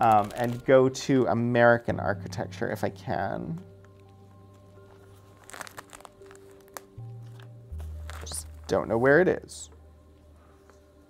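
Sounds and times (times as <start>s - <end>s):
paper pages rustling: 0.0s - 0.7s, 3.8s - 9.2s
soft background music: 0.0s - 11.0s.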